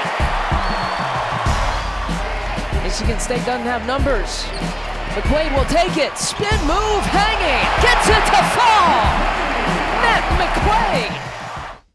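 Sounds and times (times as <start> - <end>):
arena crowd noise: 0.0 - 11.8.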